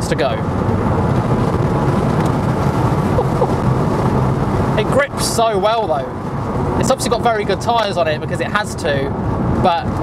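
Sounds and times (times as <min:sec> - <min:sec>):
road tyre and wind rumble in car: 0:00.0 - 0:10.0.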